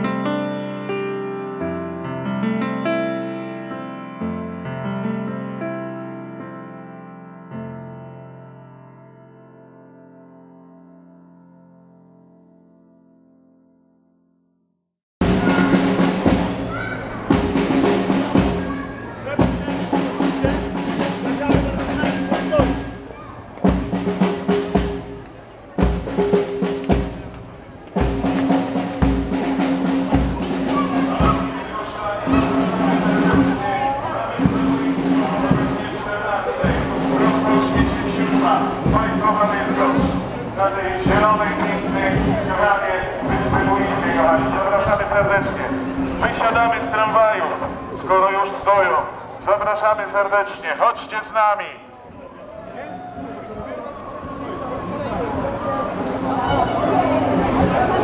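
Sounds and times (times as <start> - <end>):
drums beating steady rhythm: 15.2 - 48.1, 52.5 - 58.0
low brass notes: 15.2 - 51.4
crowd voices: 15.2 - 58.0.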